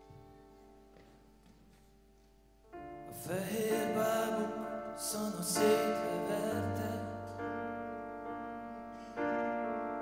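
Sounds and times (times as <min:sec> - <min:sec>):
piano chords ringing: 0:02.4 - 0:10.0.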